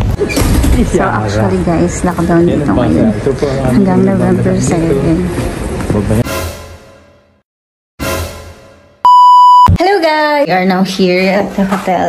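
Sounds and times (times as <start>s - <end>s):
loud flat electronic beep: 9.0s - 9.8s
woman's voice: 9.8s - 12.0s.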